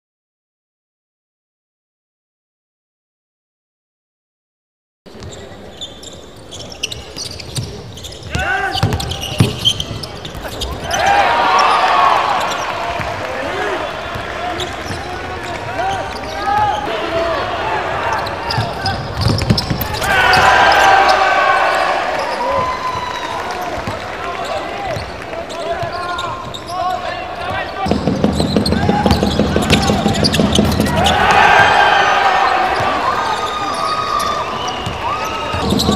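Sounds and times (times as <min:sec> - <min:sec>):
sneakers squeaking: 0:05.1 - 0:13.1, 0:13.9 - 0:35.9
crowd noise: 0:05.1 - 0:35.9
basketball bouncing on hardwood: 0:27.9 - 0:30.8.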